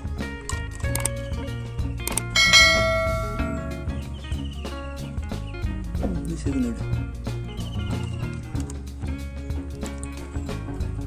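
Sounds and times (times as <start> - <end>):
background music: 0.0 - 11.0
bell-like ding: 2.4 - 4.2.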